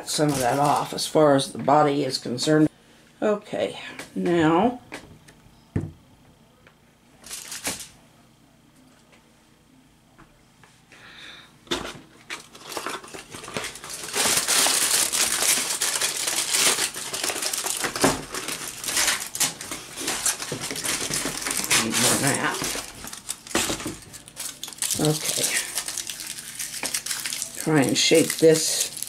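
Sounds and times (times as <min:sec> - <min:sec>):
aluminium foil crinkling: 0:00.0 - 0:01.0, 0:07.2 - 0:07.9, 0:12.2 - 0:29.0.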